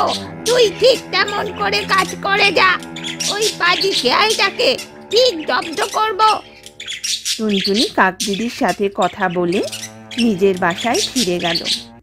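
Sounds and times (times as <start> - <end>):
cartoon character voice: 0.0 - 6.4
bird chirping: 0.0 - 12.0.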